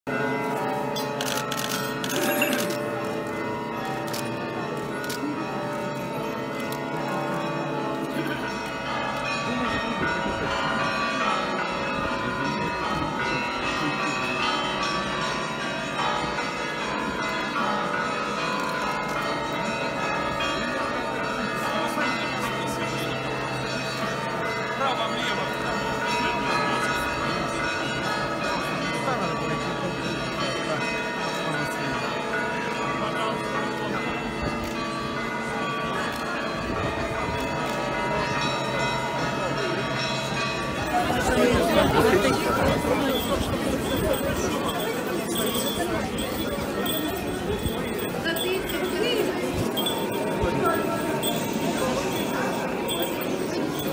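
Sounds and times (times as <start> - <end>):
church bells pealing: 0.1 - 53.9
crowd voices: 0.1 - 53.9.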